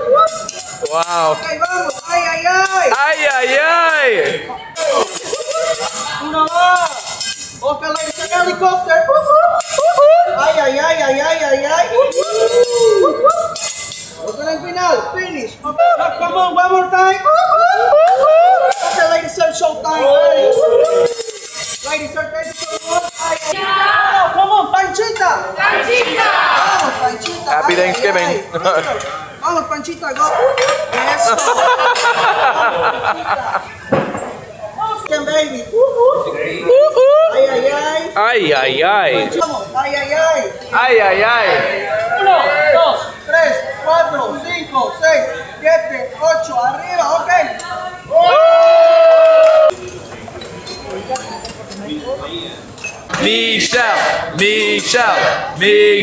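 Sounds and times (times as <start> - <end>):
voices at table: 0.0 - 56.0
metal spatula clinks: 13.6 - 14.3, 21.0 - 23.5.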